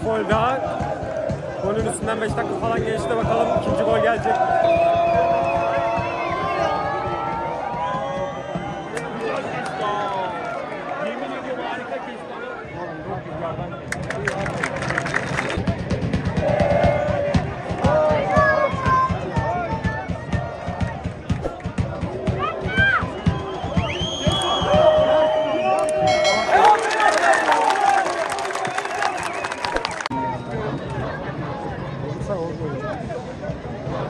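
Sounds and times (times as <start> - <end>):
crowd chanting and singing: 0.0 - 8.0, 15.4 - 28.8
rhythmic hand-clapping: 13.9 - 15.6, 25.7 - 30.1.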